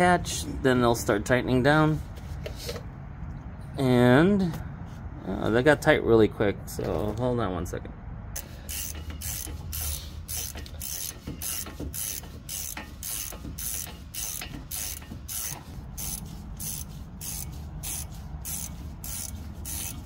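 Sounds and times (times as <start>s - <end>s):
ratchet wrench clicking: 8.4s - 20.0s.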